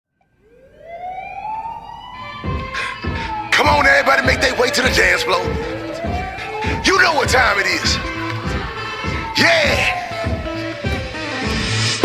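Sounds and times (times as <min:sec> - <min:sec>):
rising siren-like tone: 0:00.3 - 0:12.0.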